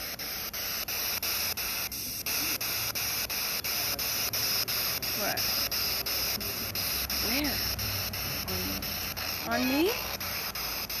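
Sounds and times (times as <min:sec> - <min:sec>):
chopped radio static hiss: 0:00.0 - 0:11.0.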